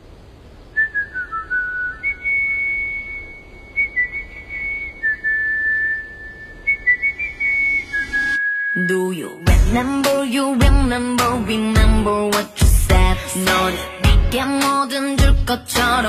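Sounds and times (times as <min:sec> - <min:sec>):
high whistle-like melody: 0:00.8 - 0:09.5.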